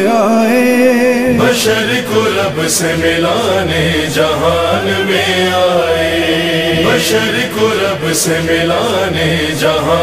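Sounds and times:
man singing melisma: 0.0 - 2.6.

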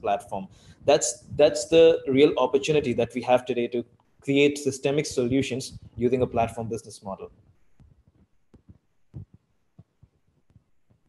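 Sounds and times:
faint low thumps: 0.0 - 11.0.

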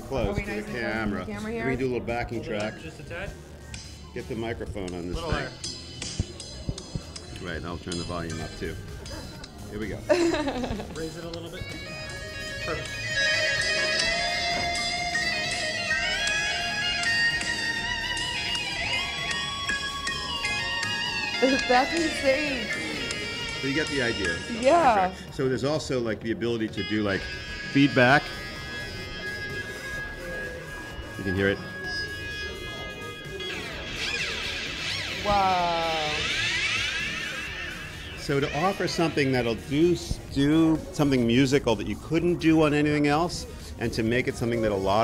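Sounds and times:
electric guitar with feedback: 11.6 - 25.3, 26.8 - 39.7
electric guitar lead with slides: 27.2 - 39.1.

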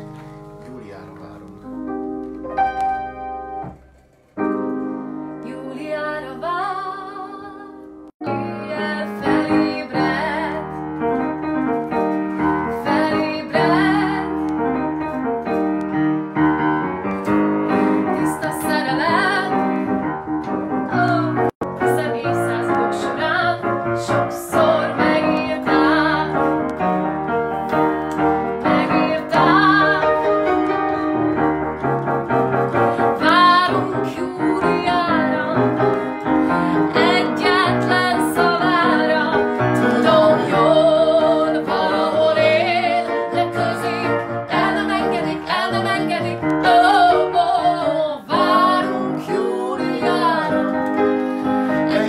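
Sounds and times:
upright piano: 0.0 - 52.0
woman singing: 5.4 - 10.8, 12.7 - 14.4, 18.1 - 19.9, 20.9 - 26.4, 28.6 - 30.3, 33.2 - 52.0.

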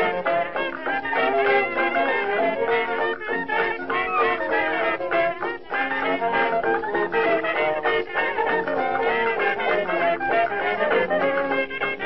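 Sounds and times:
lively background music: 0.0 - 12.0.

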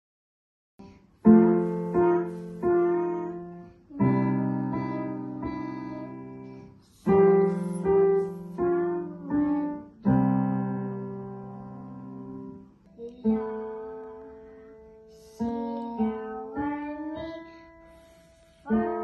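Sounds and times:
digital piano playing slow tune: 0.9 - 19.0.

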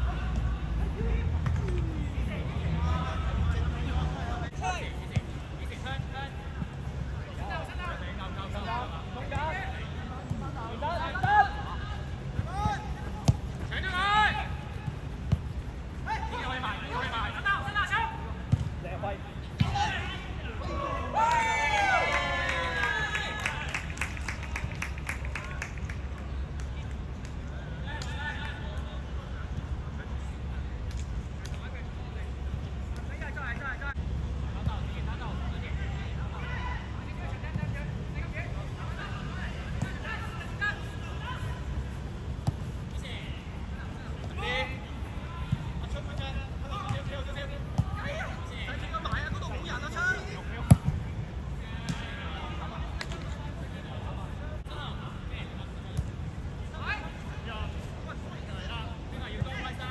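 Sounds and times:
players shouting: 10.6 - 15.0, 19.6 - 24.0.

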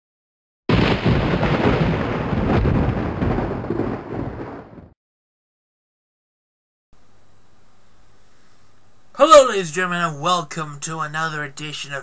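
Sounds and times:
loud rumbling crash: 0.7 - 5.0.

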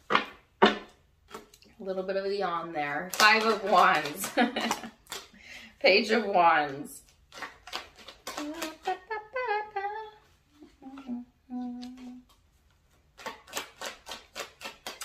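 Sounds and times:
cards being shuffled: 3.0 - 5.4, 6.2 - 9.2, 10.9 - 15.0
woman humming: 8.3 - 12.3.

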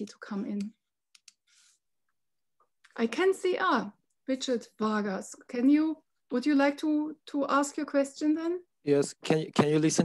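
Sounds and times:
computer keyboard or mouse clicks: 0.5 - 1.4.

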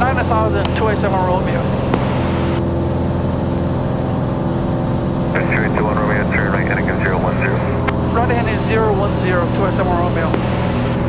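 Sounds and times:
radio voice: 0.0 - 1.7, 5.3 - 10.8
airplane engine and propeller drone: 0.0 - 11.0.

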